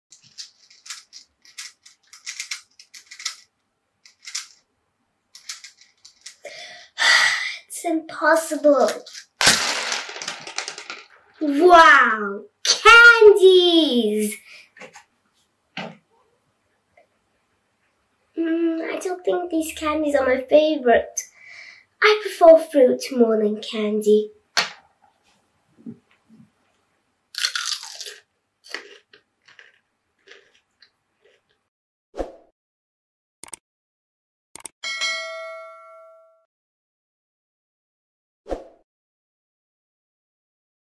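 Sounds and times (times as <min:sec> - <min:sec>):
puzzle cube clicking and scraping: 0:00.1 - 0:04.7, 0:05.4 - 0:06.4, 0:08.8 - 0:11.1
crunch of biting cucumber: 0:27.3 - 0:31.5
chewing: 0:27.4 - 0:31.6.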